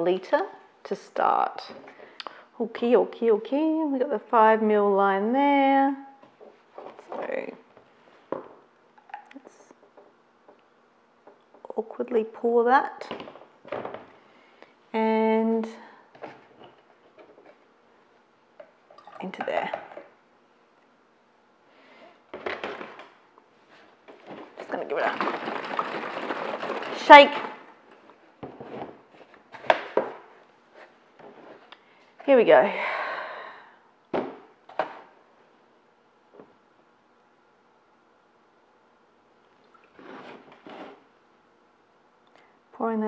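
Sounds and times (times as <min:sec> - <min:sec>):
plastic jug and cap handling: 0:24.0 - 0:31.8.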